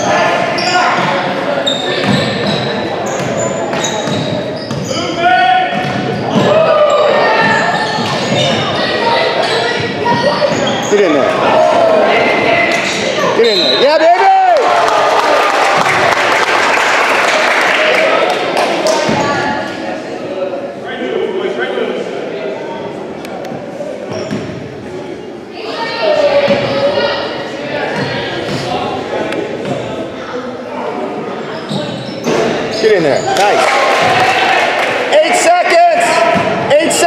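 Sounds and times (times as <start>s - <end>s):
indistinct shouts echoing: 0.0s - 19.8s, 32.4s - 37.0s.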